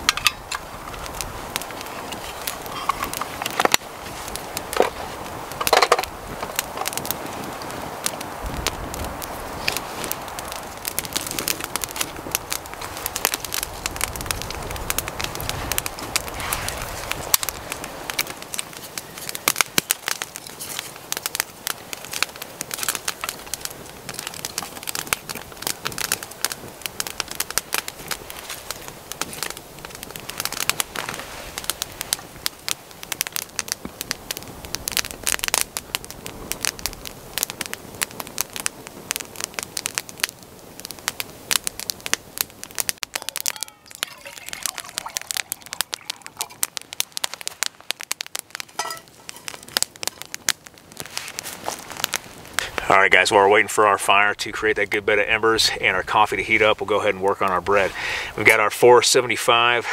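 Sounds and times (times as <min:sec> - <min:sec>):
campfire crackling and popping: 0:00.0 - 0:59.9.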